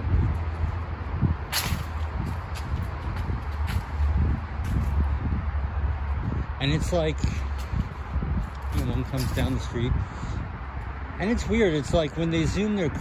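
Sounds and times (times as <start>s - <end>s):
wind noise: 0.0s - 13.0s
sharp rustle: 1.5s - 5.0s.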